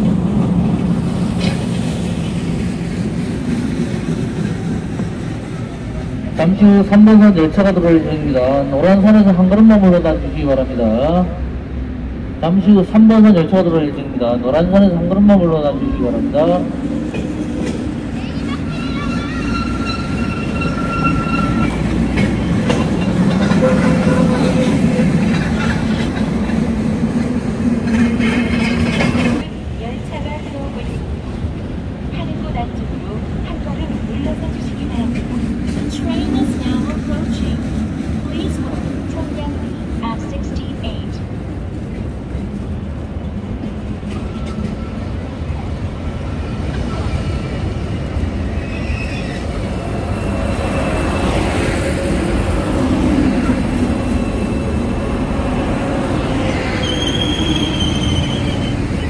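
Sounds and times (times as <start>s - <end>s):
passenger train arriving: 0.0s - 59.0s.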